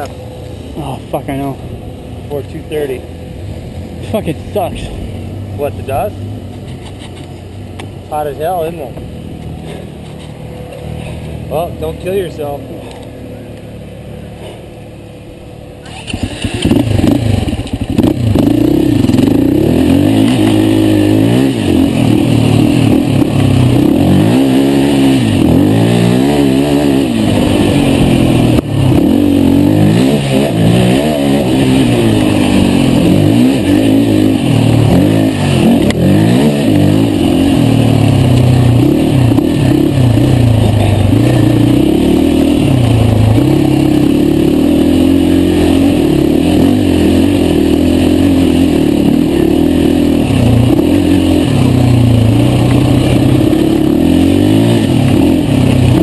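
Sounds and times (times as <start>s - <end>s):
quad engine idling: 0.0s - 24.2s, 27.0s - 56.0s.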